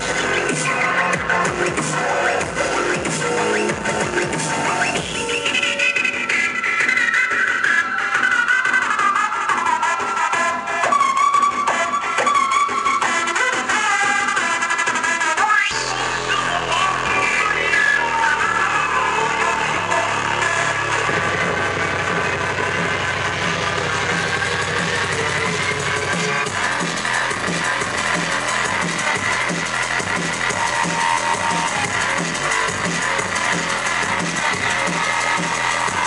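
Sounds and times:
loud dubstep music: 0.0 - 36.0.

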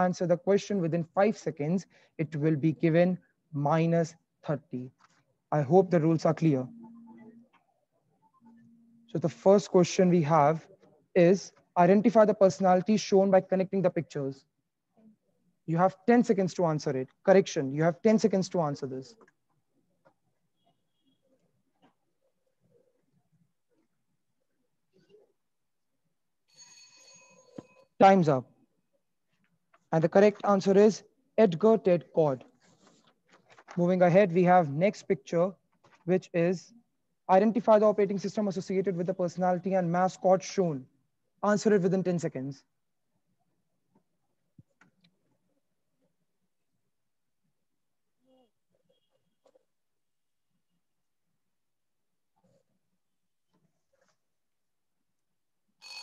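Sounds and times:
faint electronic ringing tone: 6.4 - 9.1, 26.5 - 27.9, 55.8 - 56.0
bell-like timer alarm: 26.5 - 27.9, 55.8 - 56.0.

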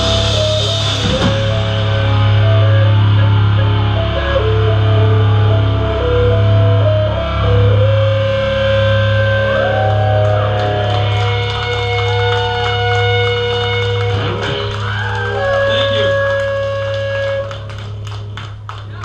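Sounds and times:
electric guitars with feedback: 0.0 - 18.8.

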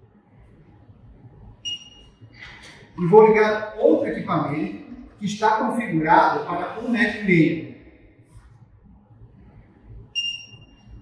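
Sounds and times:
high-pitched electronic beep: 1.6 - 2.2, 10.1 - 11.0.

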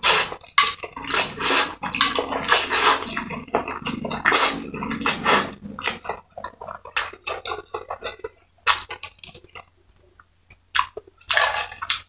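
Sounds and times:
wet noodle slurping: 0.0 - 9.6
smacking chews: 0.4 - 12.0.

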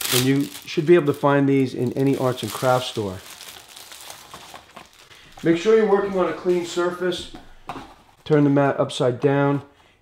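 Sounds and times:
plastic wrapper crinkling: 0.0 - 6.9.

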